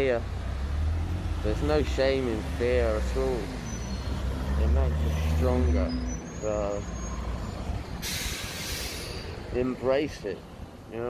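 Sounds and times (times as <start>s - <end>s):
road traffic rumbling: 0.0s - 11.0s
air brakes hissing: 8.0s - 9.4s.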